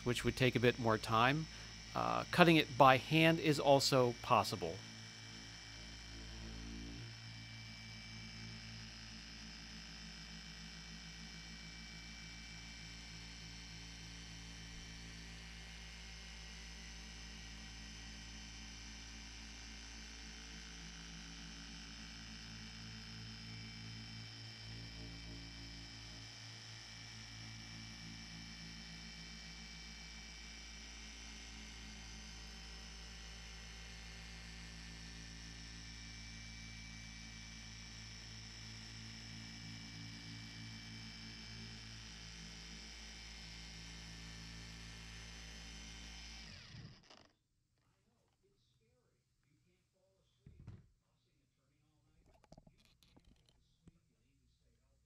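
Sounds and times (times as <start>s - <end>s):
polisher motor hum: 0.0s - 47.3s.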